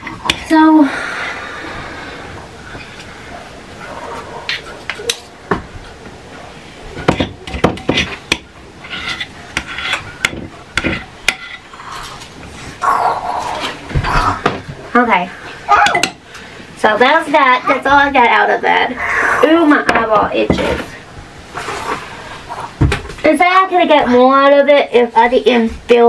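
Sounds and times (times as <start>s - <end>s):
spoon scraping a mixing bowl: 8.8s - 11.7s.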